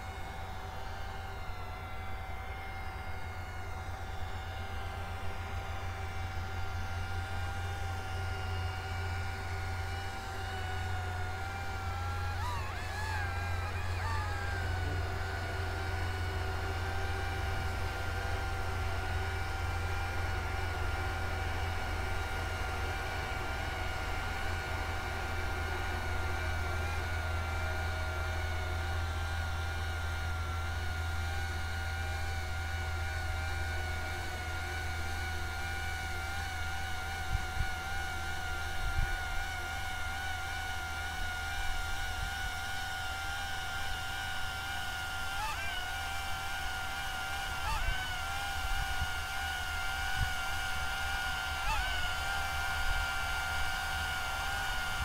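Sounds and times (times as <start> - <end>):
drone motors and propellers whining: 0.0 - 55.0
low hum: 0.0 - 55.0.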